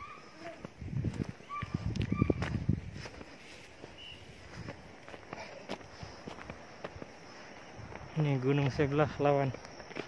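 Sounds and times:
footsteps crunching through dry brush: 0.0 - 10.0.

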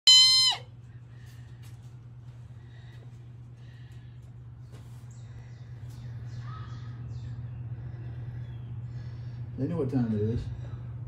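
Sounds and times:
low steady hum: 0.1 - 11.0.

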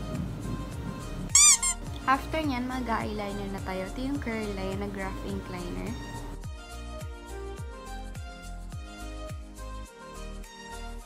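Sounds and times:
background music: 0.0 - 11.0
high-pitched squeak: 1.4 - 1.8.

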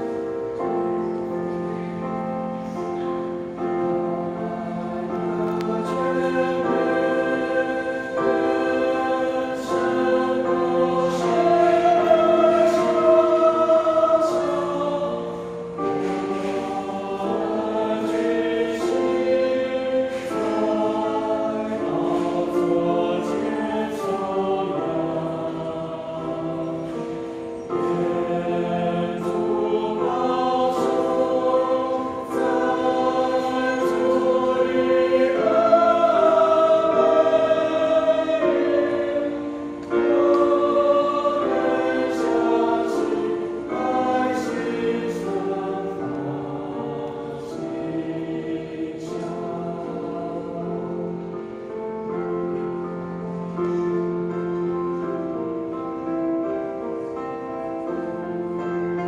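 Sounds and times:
mixed choir singing a hymn: 0.0 - 59.0.

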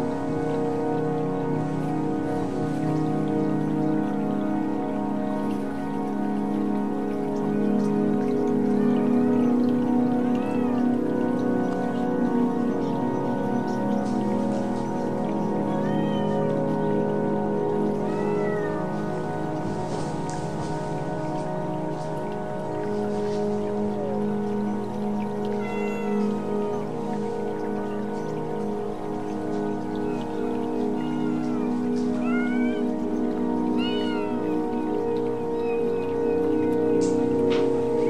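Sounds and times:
music of held tones: 0.0 - 38.0
cat meowing: 25.6 - 26.2, 31.0 - 32.8, 33.8 - 34.4.

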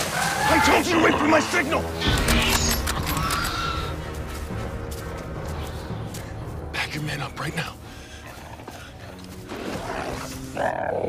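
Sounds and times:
low sustained music score: 0.0 - 11.0.

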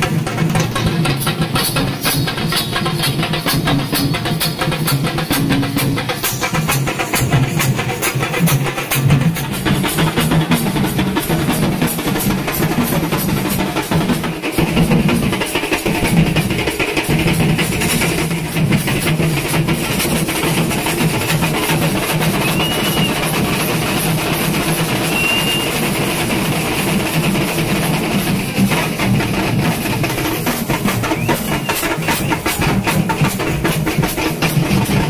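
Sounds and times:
stick drumming on barrel drums: 0.0 - 35.0.

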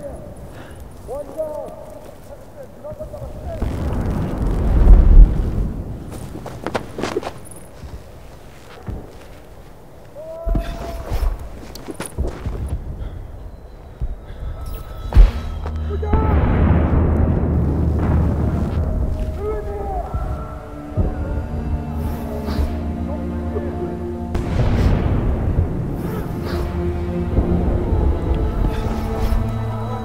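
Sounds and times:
sharp cracks: 1.0 - 7.6, 15.2 - 23.0, 24.3 - 30.0
long rumbling swell: 15.7 - 30.0.

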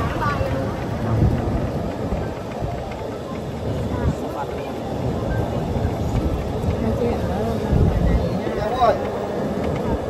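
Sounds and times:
faint indistinct voices: 0.0 - 10.0
rolling road noise: 0.0 - 10.0
wind buffeting microphone: 0.0 - 10.0.

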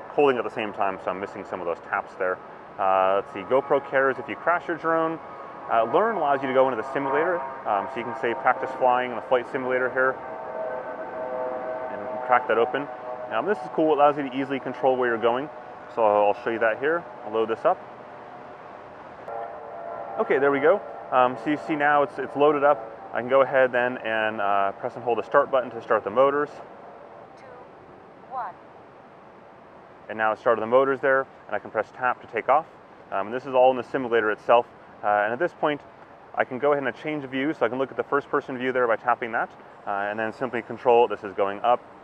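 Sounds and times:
faint outdoor background hiss: 0.0 - 42.0
steady mechanical hum: 0.0 - 42.0.

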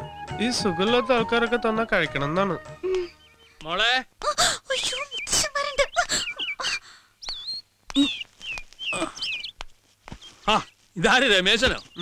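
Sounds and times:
thin whistle-like chirps: 4.8 - 9.6
person squealing: 8.9 - 9.3.

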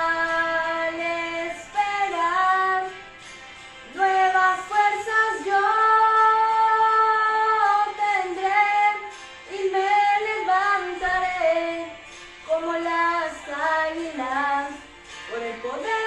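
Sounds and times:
woman singing: 0.0 - 3.0, 3.9 - 16.0.

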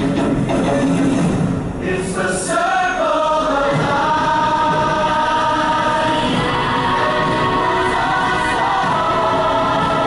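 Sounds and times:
choir holding sustained notes: 1.8 - 10.0.

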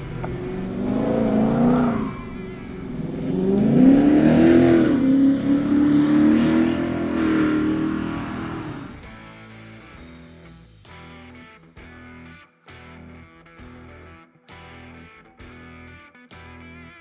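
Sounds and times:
engine accelerating: 0.0 - 10.1.

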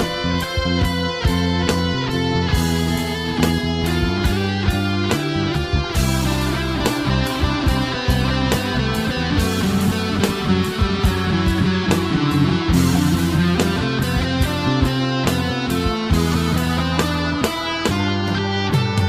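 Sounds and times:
progressive rock instrumental: 0.0 - 19.0.

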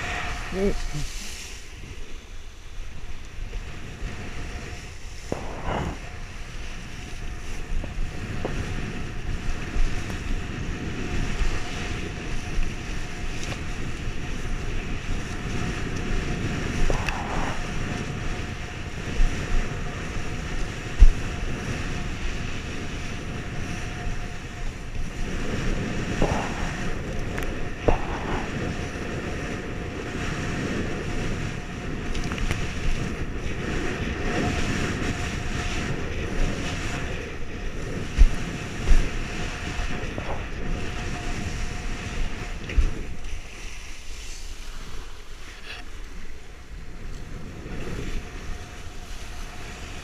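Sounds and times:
kiteboard splashing through water: 0.0 - 50.0
wind buffeting microphone: 0.0 - 50.0.

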